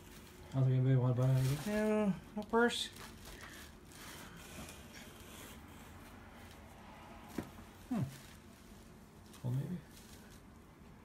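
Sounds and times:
cloth rustling: 0.0 - 10.8.

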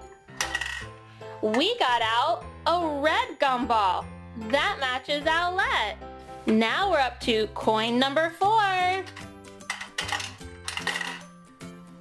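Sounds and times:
background music: 0.0 - 12.0
coin clinking into toy bank: 0.4 - 0.9, 9.0 - 11.3
coin mechanism clicking: 0.4 - 0.9, 9.1 - 11.3.

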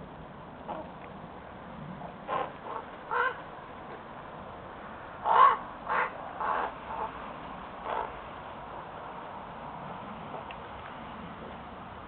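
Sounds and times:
crows cawing: 2.3 - 3.4, 5.2 - 7.1, 7.8 - 8.1.

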